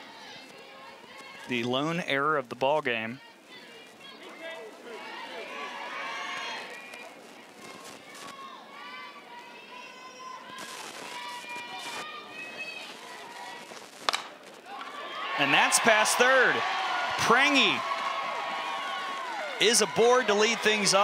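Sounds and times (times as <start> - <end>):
bat hitting ball crack: 14.0 - 15.0
voices calling out: 14.7 - 21.0.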